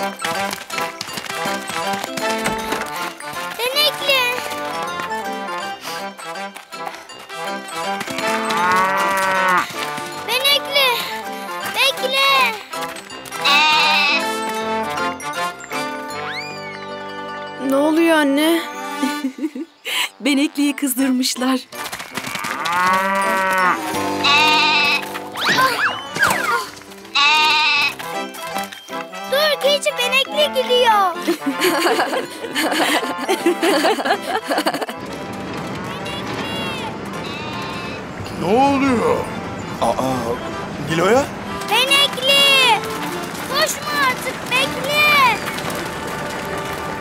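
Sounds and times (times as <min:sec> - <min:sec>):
light background music: 0:00.0 - 0:47.0
cartoon goat bleating: 0:13.4 - 0:14.3, 0:24.2 - 0:25.9, 0:27.2 - 0:27.9.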